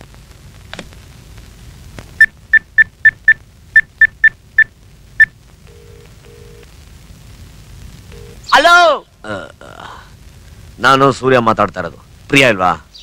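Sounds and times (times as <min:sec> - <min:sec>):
phone ringback tone: 0:05.7 - 0:06.6.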